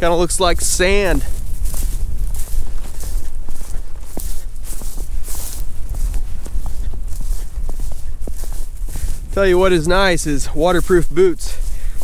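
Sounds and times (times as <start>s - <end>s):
constant low rumble: 0.0s - 12.0s
footsteps through dry grass and snow: 0.0s - 12.0s.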